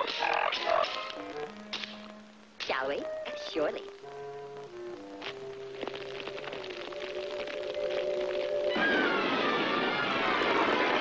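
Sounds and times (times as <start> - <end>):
cartoon explosion: 8.6 - 11.0
descending whistle: 8.6 - 11.0.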